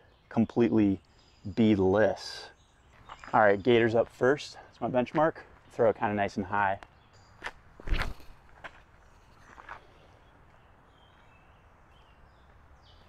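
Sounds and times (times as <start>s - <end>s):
footsteps on dirt: 2.9s - 3.5s, 7.4s - 11.4s.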